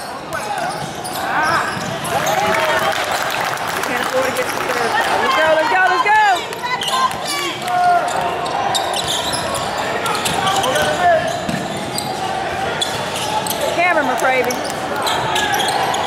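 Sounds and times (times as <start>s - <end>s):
sneaker squeaks: 0.0s - 2.6s, 6.6s - 16.0s
voices calling out: 3.8s - 16.0s.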